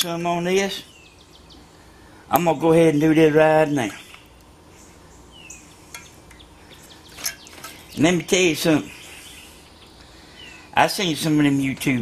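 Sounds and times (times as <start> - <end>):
bird chirp: 0.0 - 12.0.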